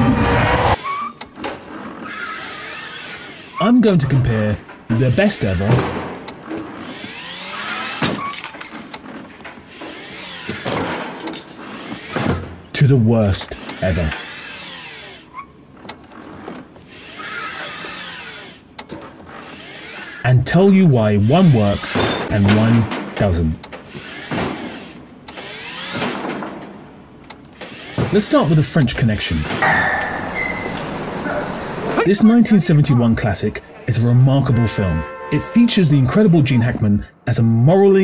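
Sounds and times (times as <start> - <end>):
electric cart motor whining: 0.8 - 3.6, 6.3 - 10.7, 13.6 - 20.2, 23.8 - 26.2.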